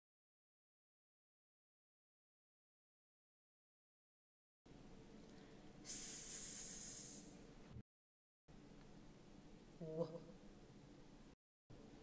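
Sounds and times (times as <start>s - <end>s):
person hissing s sound: 5.8s - 7.4s.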